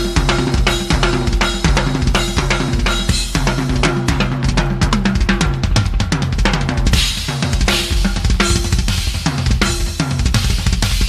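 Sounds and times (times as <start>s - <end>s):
fast rock drumming: 0.0s - 11.0s.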